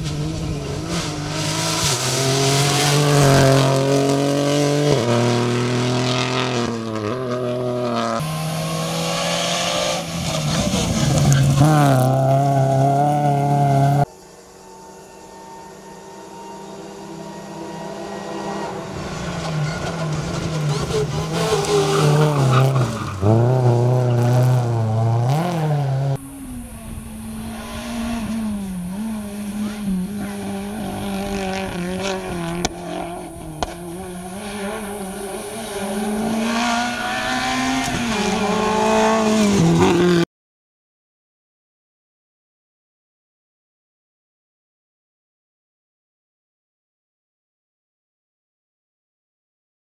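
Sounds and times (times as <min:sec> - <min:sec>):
rally car engines racing: 0:00.0 - 0:40.2.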